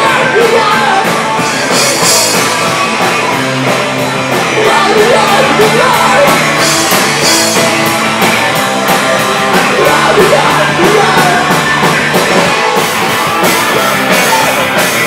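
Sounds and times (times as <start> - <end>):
person singing: 0.0 - 2.2, 4.3 - 7.6, 8.6 - 12.5, 13.3 - 15.0
drum kit beat: 0.0 - 15.0
electric guitar: 0.0 - 15.0.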